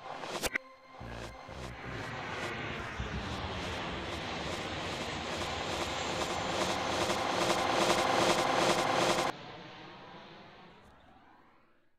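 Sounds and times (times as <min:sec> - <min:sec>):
jet airliner flying overhead: 0:01.3 - 0:11.9.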